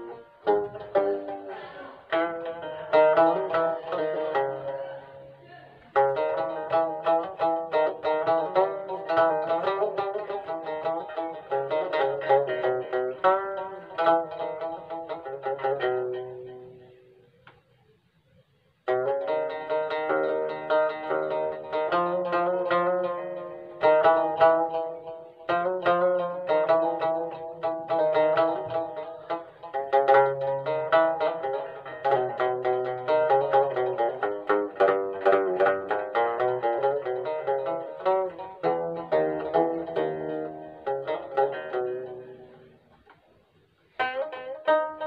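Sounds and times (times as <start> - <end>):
plucked lute solo: 0.0 - 45.0.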